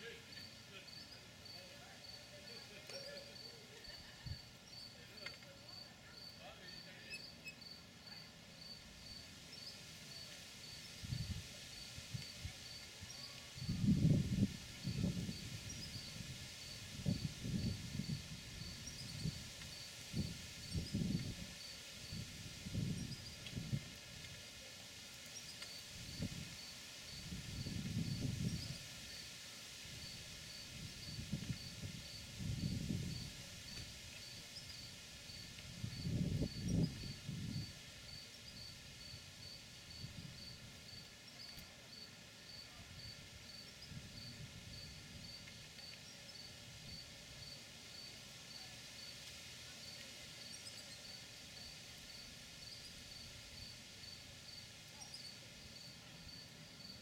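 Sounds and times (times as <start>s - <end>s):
cricket chirping: 0.0s - 23.8s, 25.3s - 57.0s.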